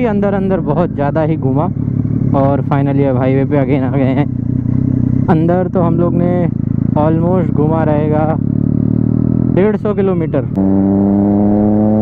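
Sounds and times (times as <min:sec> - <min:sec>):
man talking: 0:00.0 - 0:04.4, 0:05.2 - 0:08.4, 0:09.5 - 0:10.6
motorcycle engine running: 0:00.0 - 0:12.0.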